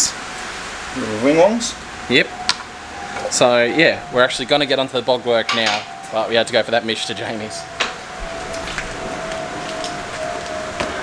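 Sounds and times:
steady rain hiss: 0.0s - 11.0s
faint tone sinking in pitch: 0.8s - 11.0s.

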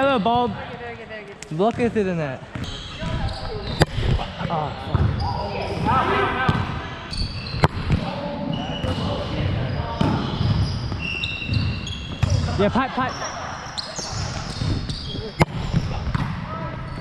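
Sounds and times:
sneakers squeaking on court: 1.7s - 5.9s, 6.5s - 17.0s.

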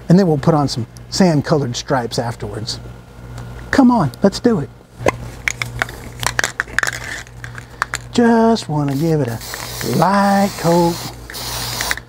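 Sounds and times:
spray cans clicking and tapping: 8.8s - 12.0s.

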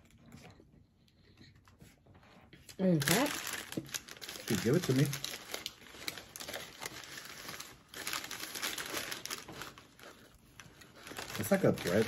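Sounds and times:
paper wrapper crinkling: 2.7s - 12.0s.

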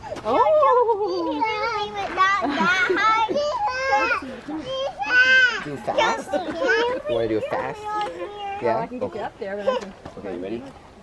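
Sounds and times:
children squealing and laughing: 0.0s - 8.9s.

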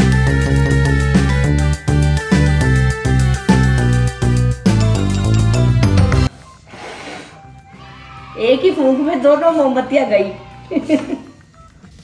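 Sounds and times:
background music: 0.0s - 12.0s
blowing out candles: 6.4s - 7.6s.

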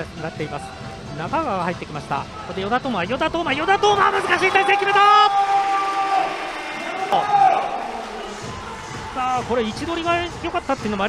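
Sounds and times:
commentator shouting: 3.2s - 8.2s.

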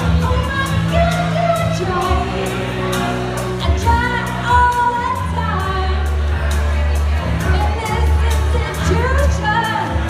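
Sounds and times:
woman singing into microphone: 0.0s - 6.4s, 7.3s - 10.0s.

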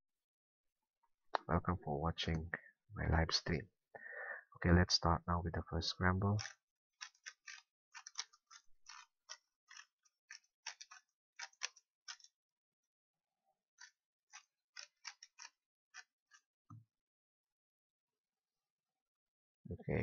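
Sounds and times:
plastic puzzle cube clicking: 6.4s - 12.3s.

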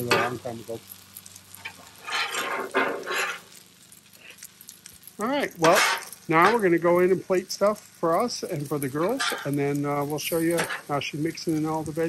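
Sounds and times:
metal spatulas scraping a griddle: 1.6s - 3.6s, 5.6s - 6.6s, 9.0s - 9.6s, 10.2s - 11.0s.

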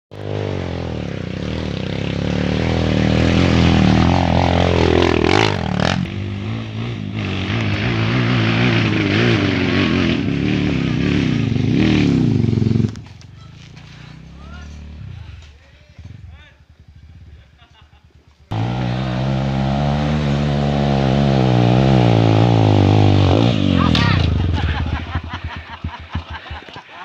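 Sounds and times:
dirt bike engine revving: 0.2s - 26.4s.

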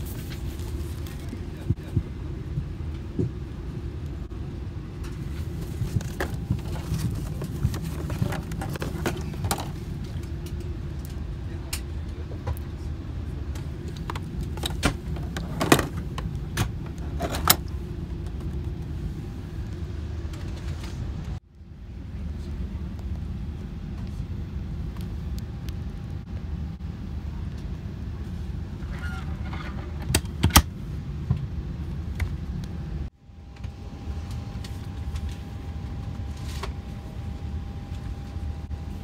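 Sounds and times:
aircraft cabin hum: 0.0s - 39.0s.

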